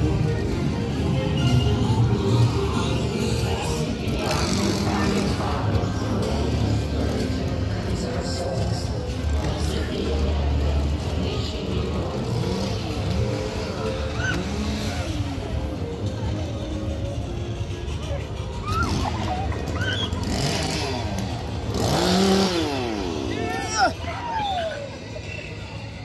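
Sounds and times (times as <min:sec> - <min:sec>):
music: 0:00.0 - 0:26.0
people's voices: 0:00.0 - 0:26.0
vehicle engine rumbling: 0:00.0 - 0:26.0.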